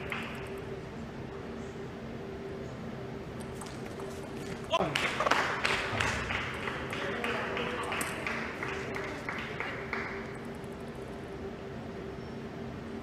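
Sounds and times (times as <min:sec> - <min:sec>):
people clapping in a hall: 0:00.0 - 0:00.5, 0:04.9 - 0:10.4.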